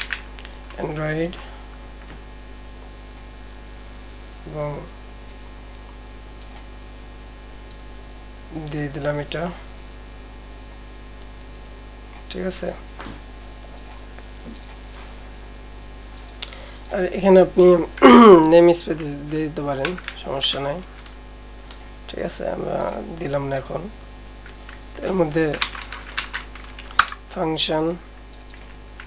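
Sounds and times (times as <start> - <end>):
low electrical mains hum: 0.0 - 29.0.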